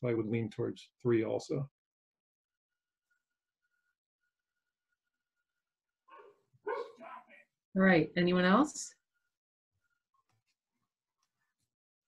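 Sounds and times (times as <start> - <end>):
dog barking: 6.1 - 7.4.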